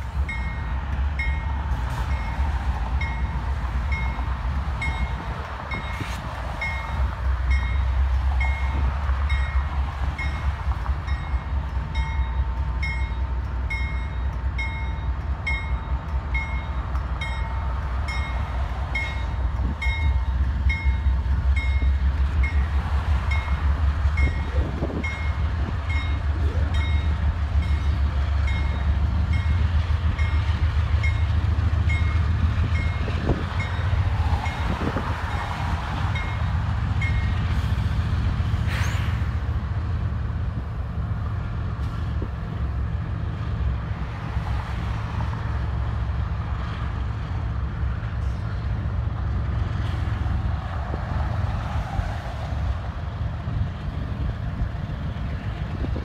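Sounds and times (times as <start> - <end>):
diesel locomotive rumble: 0.0 - 56.0.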